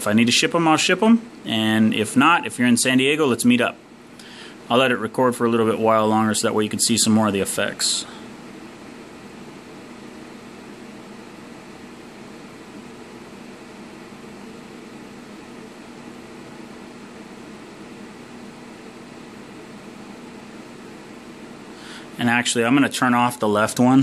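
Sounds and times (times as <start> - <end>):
fan whirring with low hum: 0.0 - 24.0.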